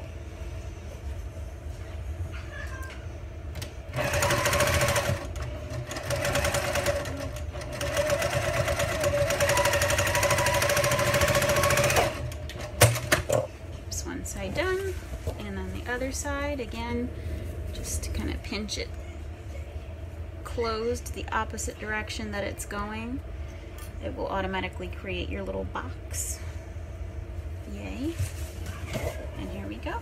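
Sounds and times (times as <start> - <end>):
electric sewing machine stitching: 3.9 - 13.0.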